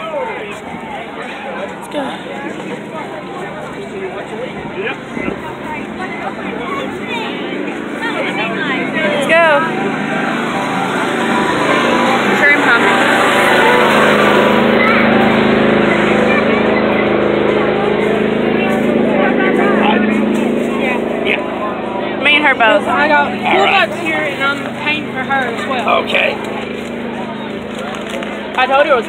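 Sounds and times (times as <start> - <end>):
people talking: 0.0 - 29.0.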